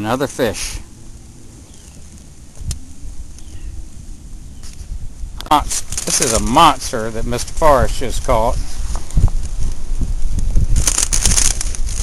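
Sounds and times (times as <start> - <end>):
wind rumble on microphone: 0.7 - 12.0.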